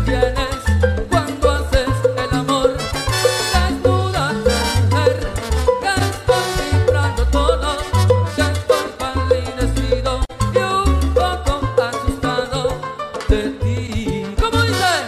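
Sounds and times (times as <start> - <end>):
bass line: 0.0 - 15.0
salsa music: 0.0 - 15.0.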